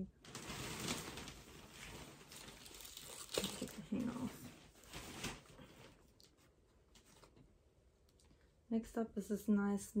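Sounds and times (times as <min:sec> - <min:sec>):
clothes rustling: 0:03.9 - 0:07.5.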